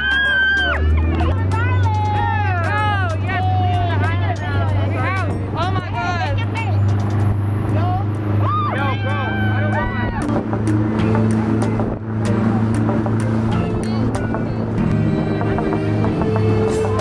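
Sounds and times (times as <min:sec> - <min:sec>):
boat engine droning: 0:00.0 - 0:17.0.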